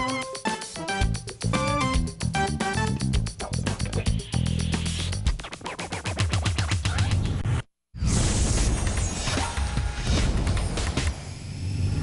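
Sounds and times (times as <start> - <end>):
music: 0.0 - 7.6, 8.4 - 12.0.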